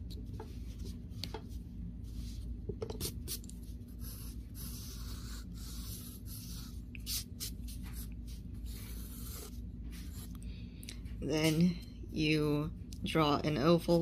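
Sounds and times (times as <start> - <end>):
steady low hum: 0.0 - 14.0
pencil scratching on paper: 3.0 - 10.3.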